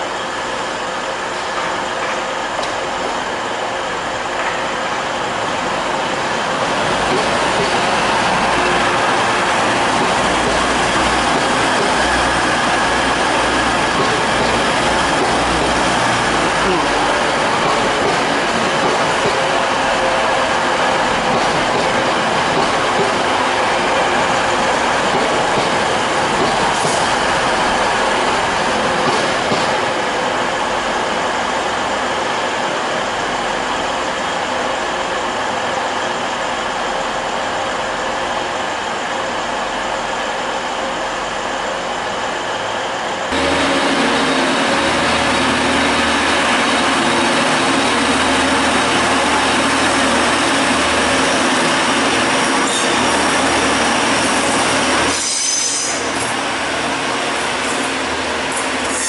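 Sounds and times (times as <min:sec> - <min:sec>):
train rumbling with wheel-on-rail noise: 0:00.0 - 0:59.0
diesel engines low drone: 0:08.0 - 0:21.3, 0:39.2 - 0:52.3.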